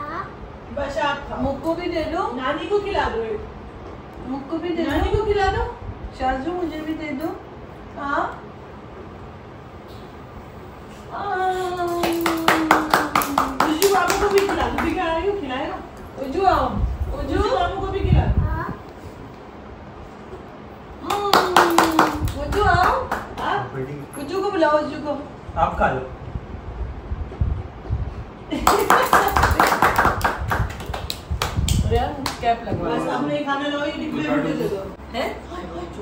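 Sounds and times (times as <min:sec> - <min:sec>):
hands clapping quickly: 0:11.8 - 0:15.0, 0:21.0 - 0:23.6, 0:28.6 - 0:32.4.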